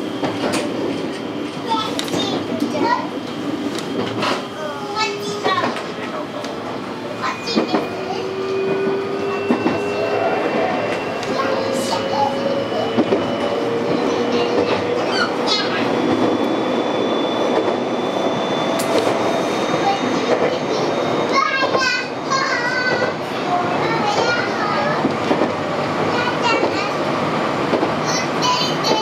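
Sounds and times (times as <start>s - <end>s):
train wheels rumbling on rail: 0.0s - 29.0s.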